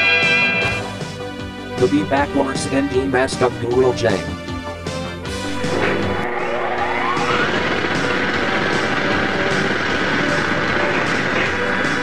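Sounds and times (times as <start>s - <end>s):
electronic whine rising in pitch: 0.0s - 0.9s, 5.4s - 10.8s.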